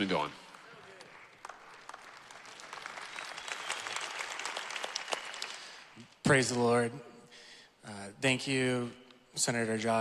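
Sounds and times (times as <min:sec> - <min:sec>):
audience applauding: 0:00.0 - 0:06.2.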